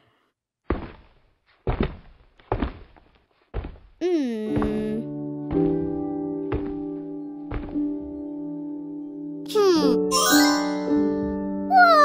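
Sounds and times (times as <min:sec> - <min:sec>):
heavy footsteps down stairs: 0:00.6 - 0:08.3.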